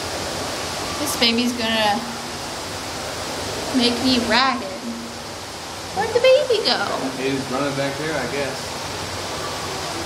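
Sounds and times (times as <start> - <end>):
water rushing: 0.0 - 10.0.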